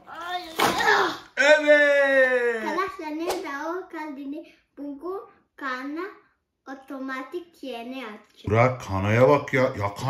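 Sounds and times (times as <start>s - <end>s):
child talking: 0.0s - 1.3s, 2.6s - 8.3s.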